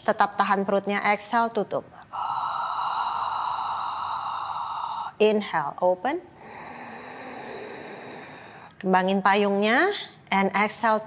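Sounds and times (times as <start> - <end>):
breath blown through pursed lips: 2.0 - 5.2, 6.4 - 8.8.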